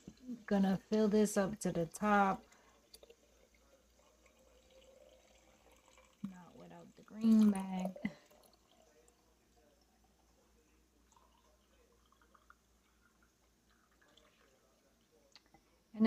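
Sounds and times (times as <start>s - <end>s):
soft drips: 0.0s - 16.0s
tea pouring into glass jar: 1.8s - 15.4s.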